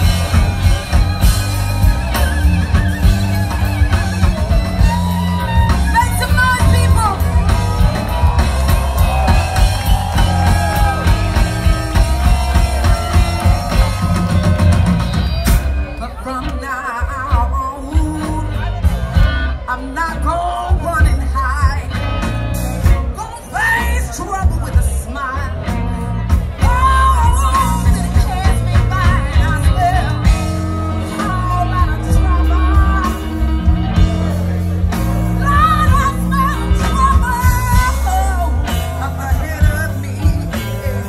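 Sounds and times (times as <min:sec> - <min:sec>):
drum kit beat: 0:00.0 - 0:41.0
electric guitar: 0:00.0 - 0:41.0
live blues band playing: 0:00.0 - 0:41.0
woman singing: 0:16.0 - 0:18.8, 0:19.5 - 0:22.0, 0:23.1 - 0:34.4, 0:35.3 - 0:41.0.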